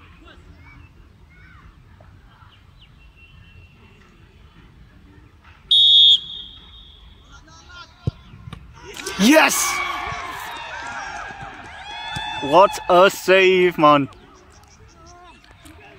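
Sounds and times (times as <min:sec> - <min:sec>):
referee's whistle blast: 0:05.7 - 0:07.2.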